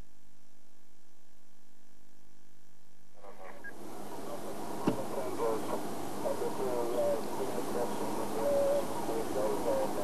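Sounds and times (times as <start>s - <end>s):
faint wavering calls: 3.2s - 10.0s
outdoor hiss: 3.4s - 10.0s.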